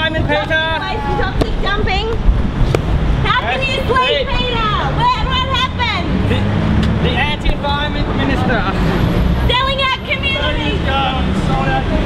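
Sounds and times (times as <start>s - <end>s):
indistinct voices talking: 0.0s - 12.0s
street traffic rumble: 0.0s - 12.0s.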